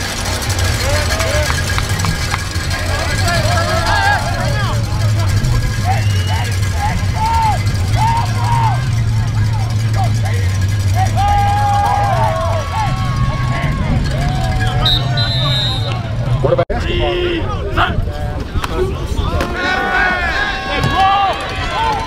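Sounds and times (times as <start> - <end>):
steady low rumble: 0.0 - 19.2
distant shouts of football players: 2.6 - 10.2, 10.8 - 16.2, 19.2 - 22.0.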